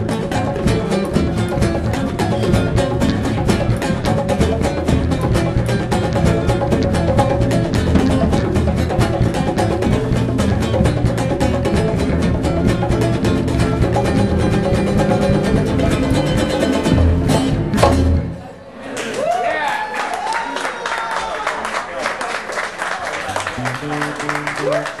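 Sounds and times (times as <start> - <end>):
acoustic band playing: 0.0 - 18.8, 23.3 - 25.0
audience cheering and applauding: 18.8 - 25.0.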